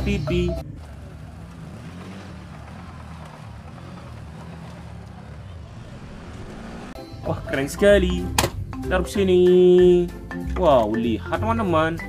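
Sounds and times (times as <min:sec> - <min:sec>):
quad bike engine revving: 0:00.0 - 0:07.0.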